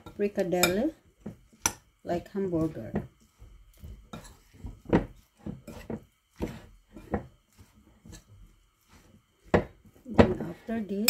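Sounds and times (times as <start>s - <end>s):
stirring thick meat mixture: 0.0s - 11.0s
spoon scraping glass bowl: 3.2s - 9.1s.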